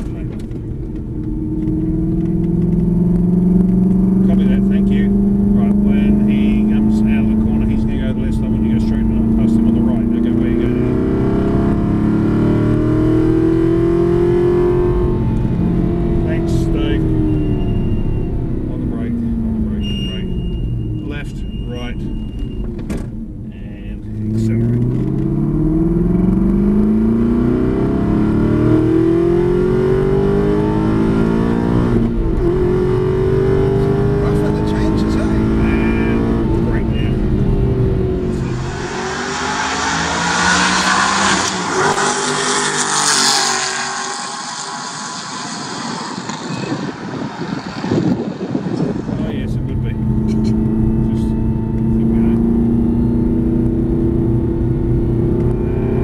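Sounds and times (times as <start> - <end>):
car engine accelerating through gears: 0.0 - 56.0.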